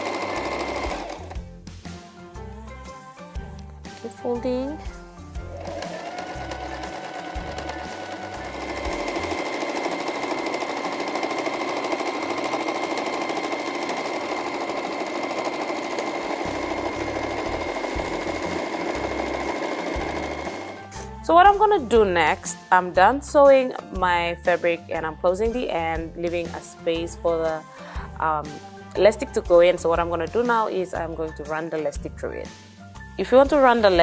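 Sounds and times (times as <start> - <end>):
sewing machine whirring: 0.0 - 1.4, 5.5 - 21.0.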